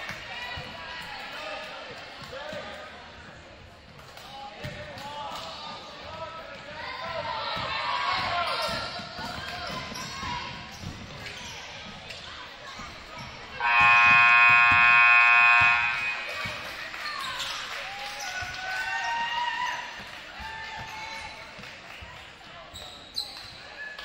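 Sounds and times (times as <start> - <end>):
voices echoing in gym: 0.0 - 24.0
scoreboard horn blast: 13.6 - 16.5.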